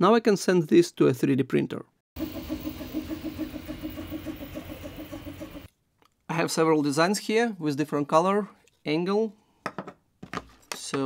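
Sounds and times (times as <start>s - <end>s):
stepper motors humming and whining: 2.2s - 5.7s.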